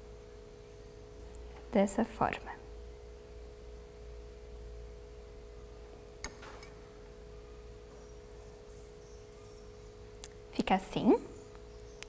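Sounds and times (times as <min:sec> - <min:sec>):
hum of held tones: 0:00.0 - 0:12.0.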